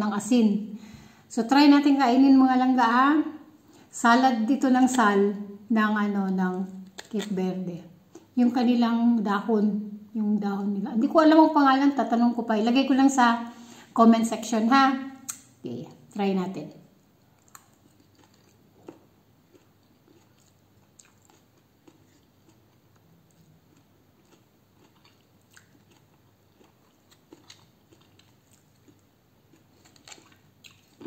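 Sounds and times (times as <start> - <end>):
chewing salad: 6.3 - 7.4, 15.2 - 15.5, 17.2 - 31.0.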